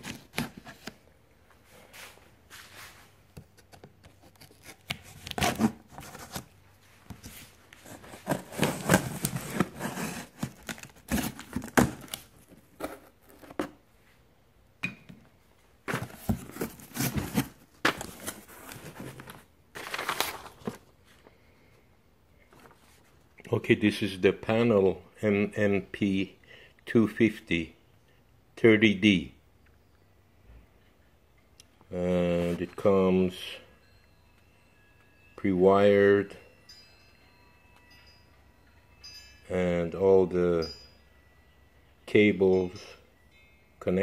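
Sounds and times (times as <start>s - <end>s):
cardboard tearing and rustling: 4.1s - 6.5s, 7.8s - 13.8s, 15.9s - 20.9s.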